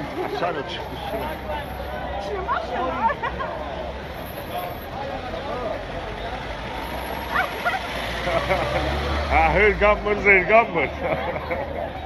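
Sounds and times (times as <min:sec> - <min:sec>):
street noise: 0:00.0 - 0:12.0.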